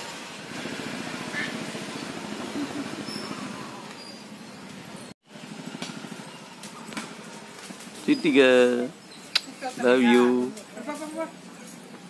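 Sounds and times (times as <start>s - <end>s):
small engine running: 0.4s - 3.9s.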